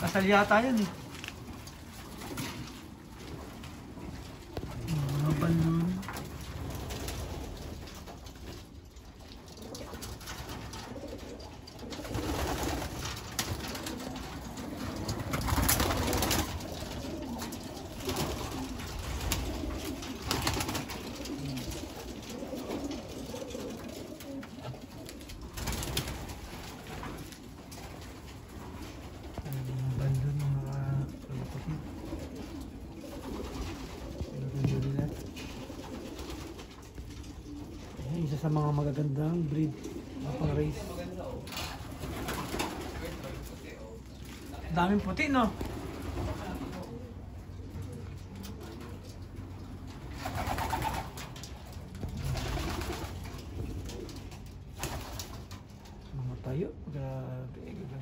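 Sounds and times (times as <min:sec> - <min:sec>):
pigeons cooing: 0:00.0 - 0:58.0.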